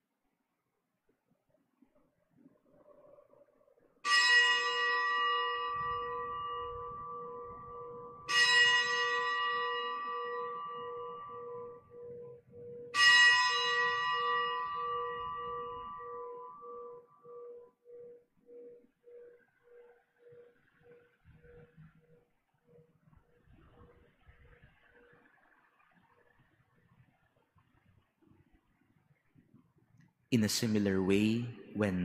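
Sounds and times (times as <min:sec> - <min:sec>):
consecration bell ringing: 0:04.1 - 0:18.8.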